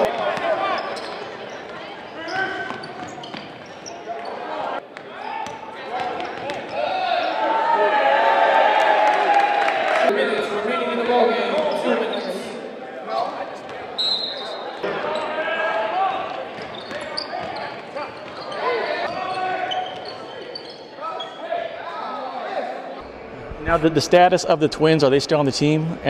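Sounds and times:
voices of players and spectators: 0.0 - 26.0.

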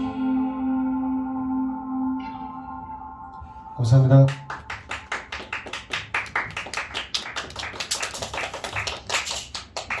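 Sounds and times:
small audience applauding: 4.2 - 10.0.

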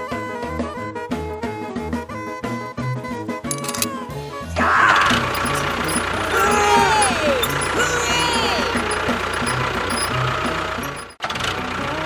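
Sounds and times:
engine idling: 3.4 - 12.0.

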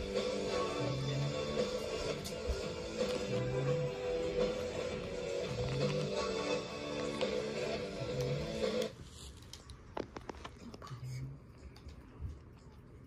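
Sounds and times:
music from a television: 0.0 - 10.8.

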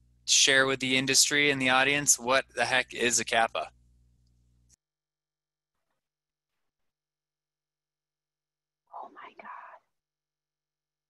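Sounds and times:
faint whispered voice: 8.9 - 10.0.

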